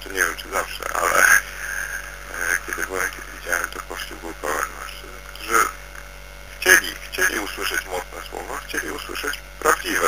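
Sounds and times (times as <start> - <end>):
man speaking: 0.0 - 5.8, 6.5 - 10.0
electrical mains hum: 0.0 - 10.0.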